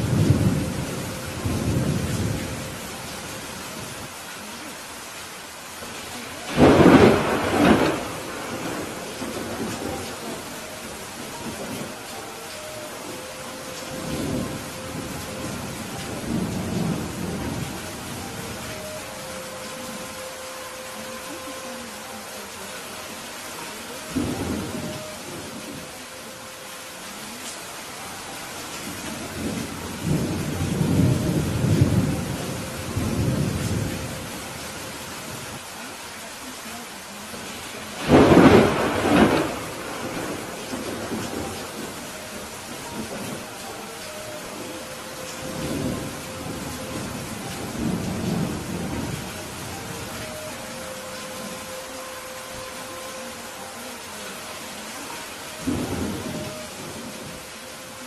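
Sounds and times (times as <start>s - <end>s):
thunder rumbling: 0.0s - 4.2s, 5.8s - 22.9s, 23.6s - 26.3s, 27.9s - 35.7s, 37.5s - 54.3s, 55.0s - 58.0s
rain falling: 0.0s - 58.0s
thunder clap rolling: 6.5s - 13.2s, 38.0s - 43.6s.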